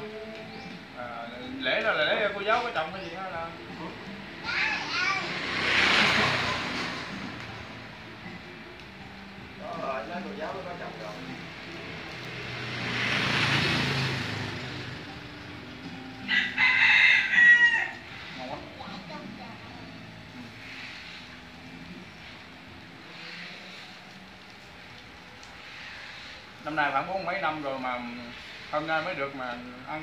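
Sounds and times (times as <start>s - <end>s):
broad rushing sound: 4.5s - 8.4s
rooster crowing: 16.2s - 18.3s.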